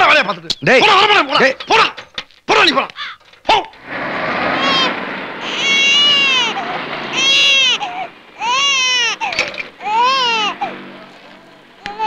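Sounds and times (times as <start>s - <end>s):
infant crying: 4.6s - 10.8s, 11.8s - 12.0s.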